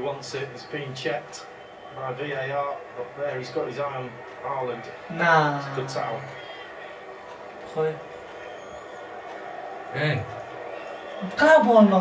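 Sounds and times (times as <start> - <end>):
football match broadcast on television: 0.0 - 12.0.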